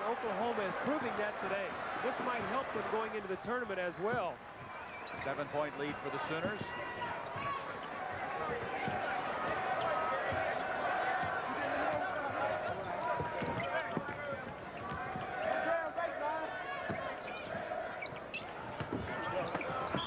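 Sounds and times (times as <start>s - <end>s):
murmur of arena crowd: 0.0s - 20.0s
sneakers squeaking: 2.1s - 20.0s
basketball bouncing on hardwood: 4.0s - 5.5s, 6.2s - 15.6s, 16.8s - 20.0s.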